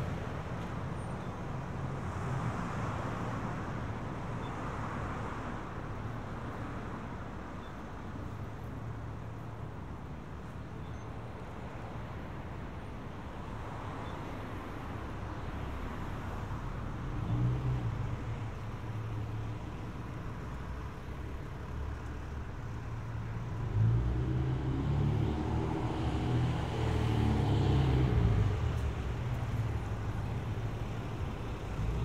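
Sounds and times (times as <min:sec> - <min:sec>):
cars and trucks passing: 0:00.0 - 0:32.0.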